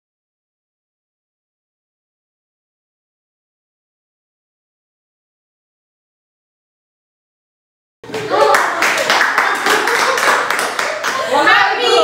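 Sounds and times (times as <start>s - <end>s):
people clapping: 8.0s - 12.0s.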